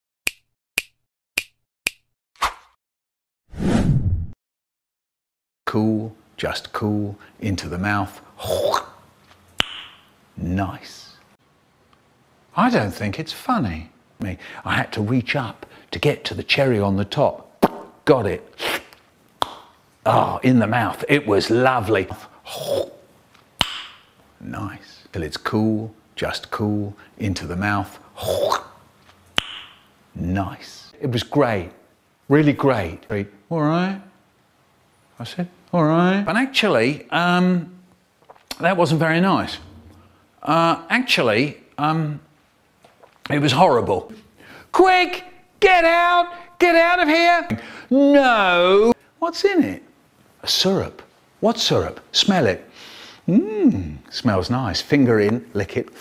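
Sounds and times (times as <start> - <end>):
sharp snaps: 0.2 - 2.8, 9.6 - 10.1, 17.6 - 18.0, 18.7 - 19.8, 23.3 - 24.1, 29.3 - 29.9
sharp mouth click: 9.6 - 10.0, 23.6 - 24.1, 29.4 - 29.9, 38.2 - 38.6.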